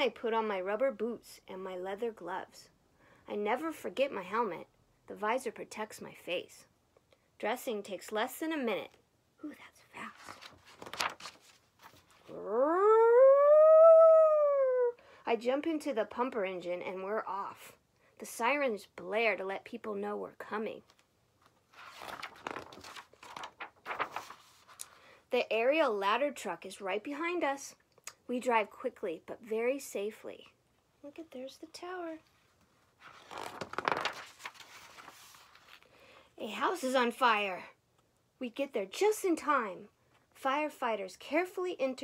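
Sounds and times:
book pages turning: 10.0s - 12.4s, 20.9s - 25.0s, 32.6s - 35.9s
voice howling: 12.3s - 15.0s.

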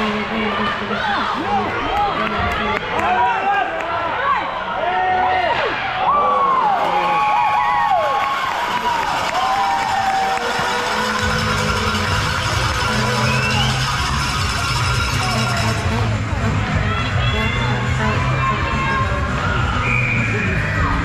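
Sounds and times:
crowd shouting and cheering: 0.0s - 21.0s
music with low bass line: 10.4s - 21.0s.

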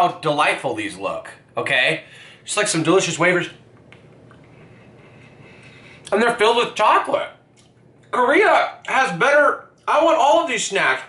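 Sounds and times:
room noise hiss: 0.0s - 11.0s
chewing soft cookie: 7.5s - 8.2s.

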